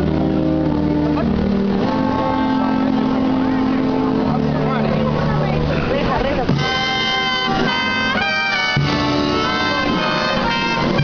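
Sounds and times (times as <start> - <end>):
brass band playing march: 0.0 - 4.5, 6.5 - 11.0
crowd voices: 0.0 - 11.0.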